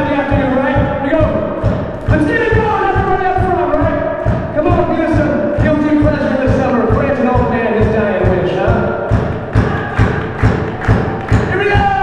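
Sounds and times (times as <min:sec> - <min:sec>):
kick drum beating: 0:00.0 - 0:12.0
crowd clapping along: 0:09.2 - 0:12.0.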